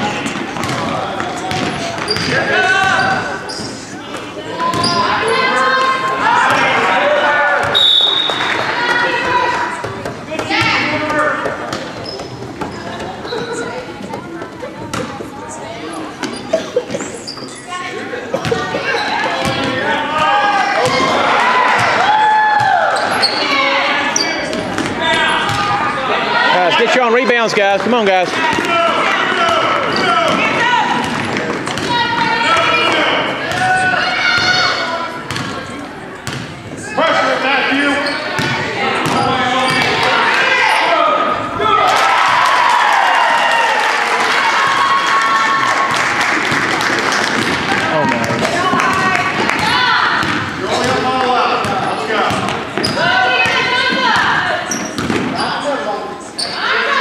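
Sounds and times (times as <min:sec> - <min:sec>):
voices and shouts: 0:00.0 - 0:12.2, 0:17.2 - 0:35.9, 0:36.8 - 0:46.2, 0:47.5 - 0:57.0.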